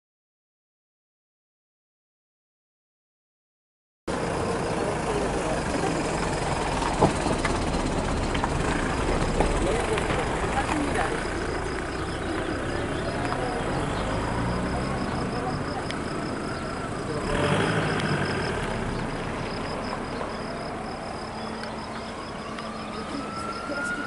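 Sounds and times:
car passing on road: 4.1 - 24.0
indistinct voices: 4.1 - 24.0
police motorcycle approaching: 4.1 - 24.0.

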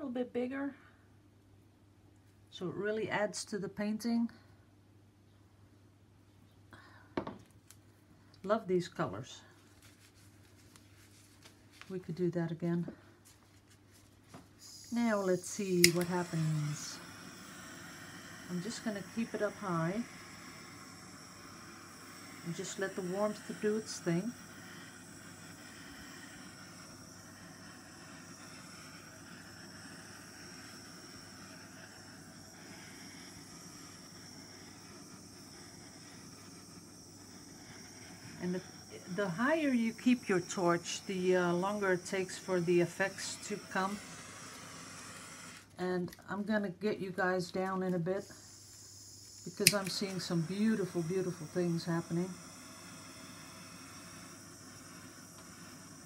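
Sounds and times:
handheld torch hissing: 14.5 - 45.8, 48.1 - 56.0.

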